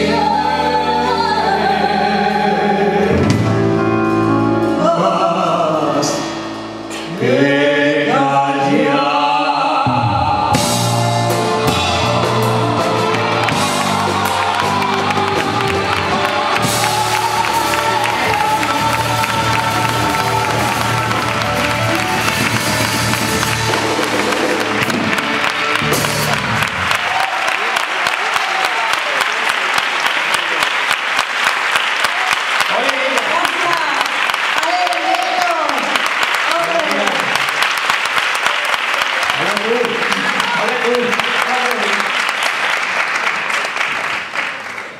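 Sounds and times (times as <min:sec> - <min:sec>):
man and woman singing with band: 0:00.0 - 0:03.8, 0:04.6 - 0:22.2
audience applauding: 0:11.3 - 0:44.9.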